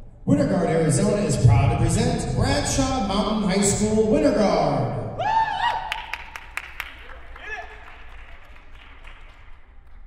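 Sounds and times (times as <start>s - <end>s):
audience applause: 5.6s - 10.0s.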